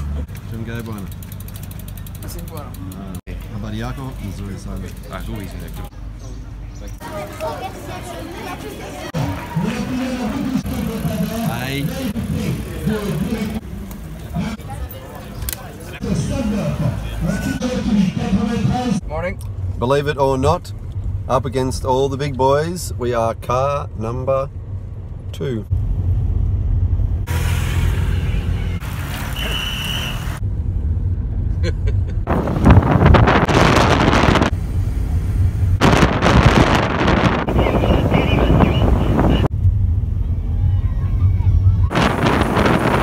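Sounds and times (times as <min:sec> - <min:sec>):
street crowd chatter: 0:00.0 - 0:19.2, 0:37.2 - 0:43.0
car road and engine rumble: 0:00.0 - 0:43.0
wind rushing over microphone: 0:32.2 - 0:43.0.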